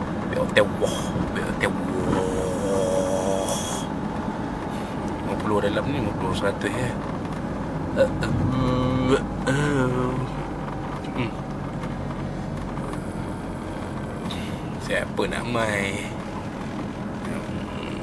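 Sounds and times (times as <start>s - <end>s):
car engine and tyres rumbling: 0.0s - 18.0s
person's wavering voice: 0.9s - 3.9s, 8.0s - 10.4s.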